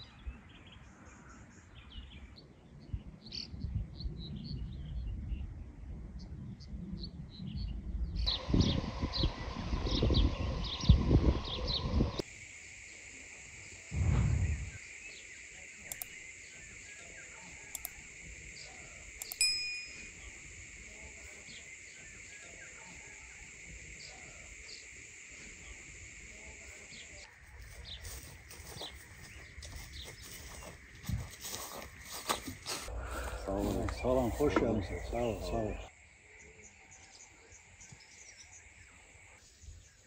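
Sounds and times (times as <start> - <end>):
wind buffeting microphone: 2.8 - 12.2, 14.0 - 14.8
steady high hiss: 12.2 - 29.0
low gust: 13.9 - 14.8, 32.9 - 34.1
clicks: 17.7 - 18.0, 19.2 - 20.1
bright ding: 19.2 - 20.2
birds chirping: 21.1 - 40.0.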